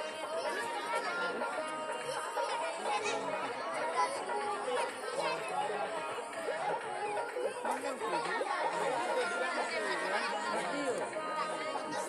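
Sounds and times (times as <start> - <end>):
many voices chattering: 0.0 - 12.0
music playing: 0.0 - 12.0.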